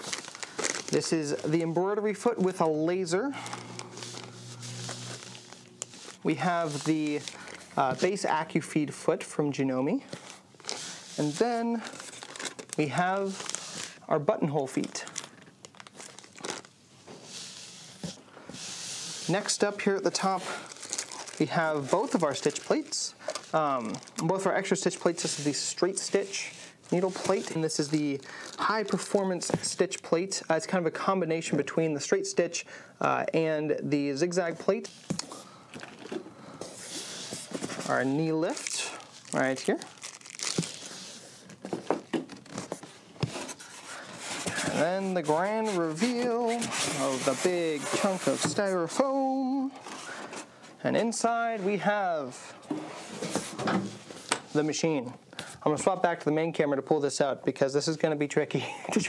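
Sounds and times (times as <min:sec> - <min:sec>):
plastic bag crinkling: 0:00.0 - 0:08.5, 0:10.2 - 0:14.0, 0:14.7 - 0:16.8, 0:20.1 - 0:29.5, 0:37.2 - 0:48.1.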